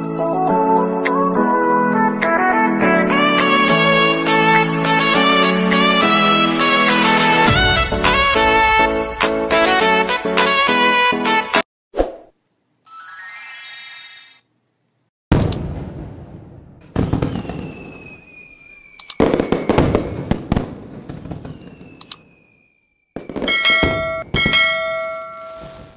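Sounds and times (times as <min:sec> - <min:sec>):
background music: 0:00.0 - 0:11.6
shimmering tone: 0:12.9 - 0:14.4
firework-like crackling with whistles: 0:17.0 - 0:24.6
bell-like chime: 0:23.5 - 0:25.9.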